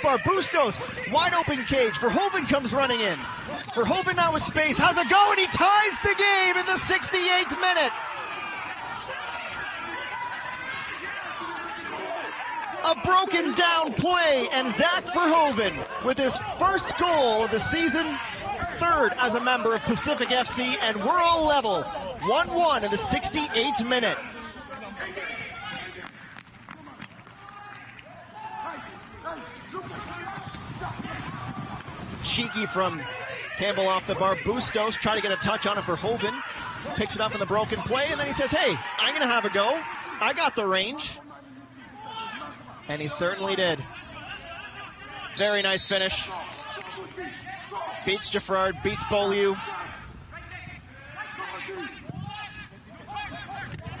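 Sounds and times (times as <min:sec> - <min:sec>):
players calling out: 0:00.0 - 0:54.0
small crowd: 0:00.0 - 0:54.0.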